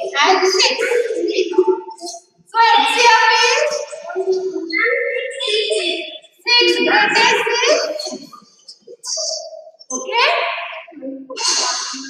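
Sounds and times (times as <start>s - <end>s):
children answering in unison: 0.0s - 8.4s, 9.1s - 12.0s.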